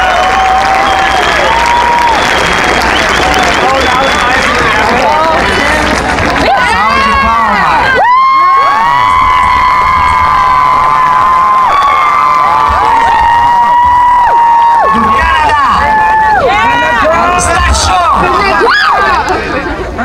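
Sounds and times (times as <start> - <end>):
crowd cheering and yelling: 0.0 - 20.0
high held screams: 7.1 - 17.0.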